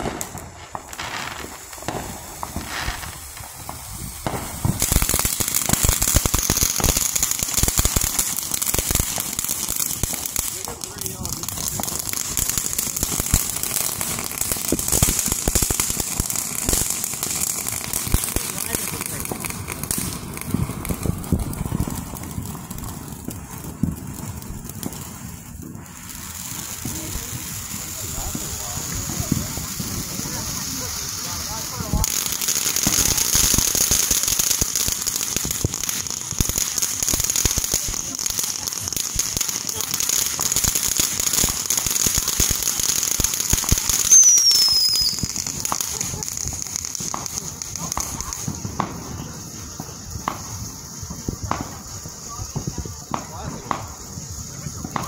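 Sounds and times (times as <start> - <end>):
fireworks hissing and crackling: 0.0 - 55.0
falling whistle: 44.0 - 45.3.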